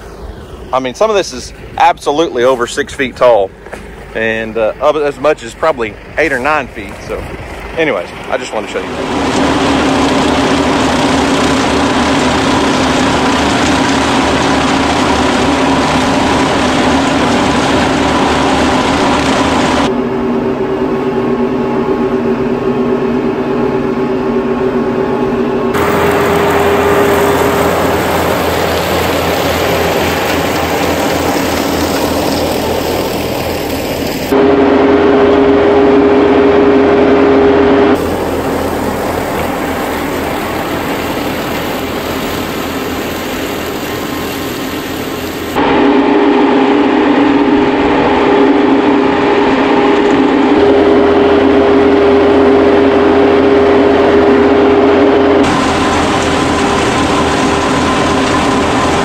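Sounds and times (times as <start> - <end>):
tractor diesel engine under load: 0.0 - 19.9, 25.7 - 59.0.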